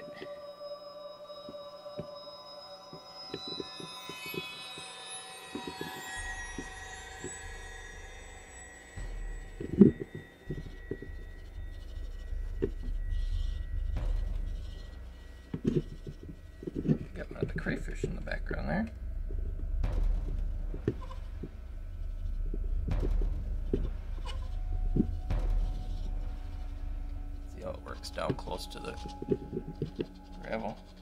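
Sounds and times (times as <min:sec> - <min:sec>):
soft background music: 0:00.0 - 0:31.0
low rubbing rumble: 0:06.2 - 0:31.0.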